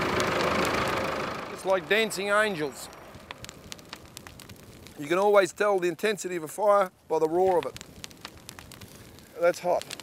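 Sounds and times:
bonfire flames rushing: 0.0 - 10.0
fire crackling and popping: 0.0 - 10.0.

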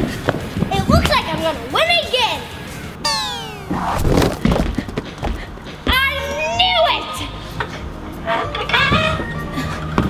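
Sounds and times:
descending power-down tones: 3.0 - 4.5.

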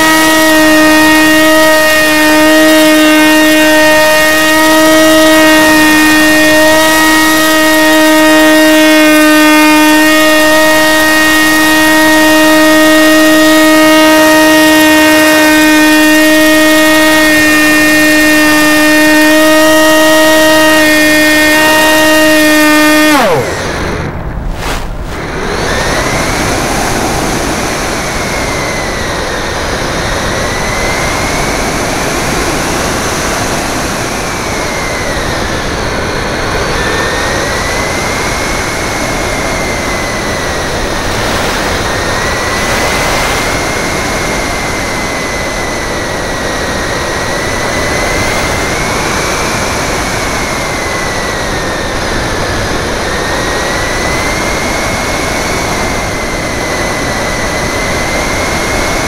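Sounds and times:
electric motor and propeller whine: 0.0 - 59.0
wind rush on microphone: 21.6 - 59.0.

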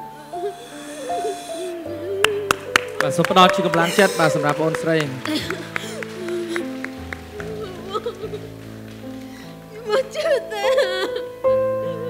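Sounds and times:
slow sustained background music: 0.0 - 12.0.

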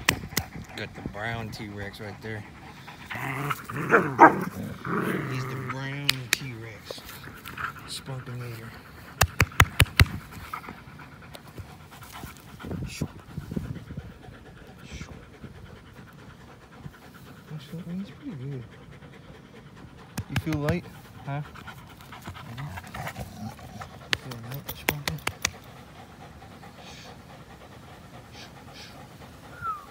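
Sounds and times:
dog panting: 0.0 - 29.9.

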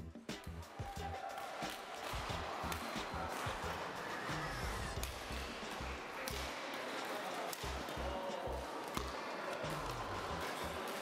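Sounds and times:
music with steady beat: 0.0 - 6.6
busy sports hall: 0.0 - 11.0
rackets striking shuttlecocks: 0.2 - 11.0.

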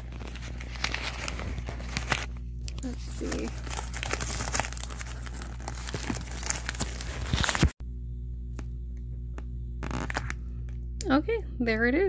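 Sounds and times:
tissue paper crinkling: 0.0 - 7.8
low steady hum: 0.0 - 12.0.

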